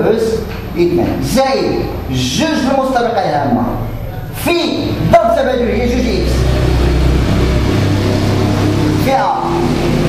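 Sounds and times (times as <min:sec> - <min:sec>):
loud rumble with hiss: 0:04.8 - 0:10.0.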